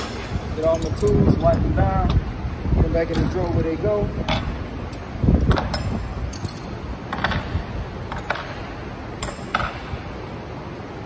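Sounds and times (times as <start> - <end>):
metal wrenches clinking: 3.0 - 3.7, 4.9 - 6.8.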